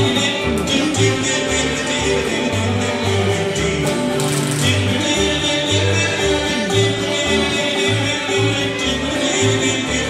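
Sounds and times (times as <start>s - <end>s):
acoustic bluegrass band playing: 0.0s - 10.0s
upright bass notes: 0.0s - 10.0s.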